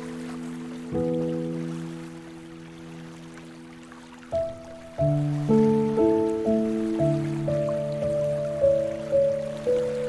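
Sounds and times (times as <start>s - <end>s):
gentle piano music: 0.0s - 10.0s.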